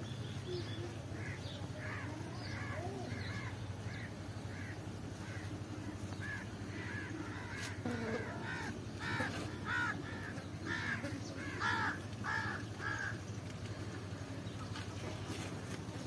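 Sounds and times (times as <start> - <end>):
bird calling: 0.0 - 15.7
low background hum: 0.0 - 16.0.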